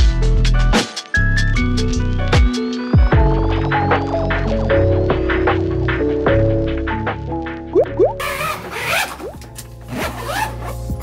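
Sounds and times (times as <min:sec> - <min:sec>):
background music with bass: 0:00.0 - 0:11.0
suitcase zipper opening: 0:08.2 - 0:11.0.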